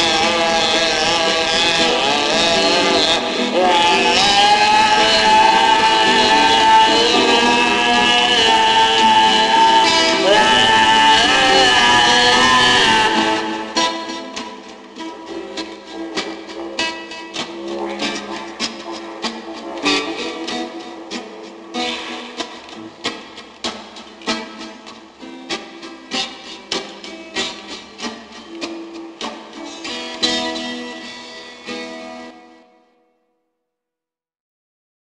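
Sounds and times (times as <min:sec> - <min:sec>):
strummed acoustic string instrument: 0:00.0 - 0:32.9.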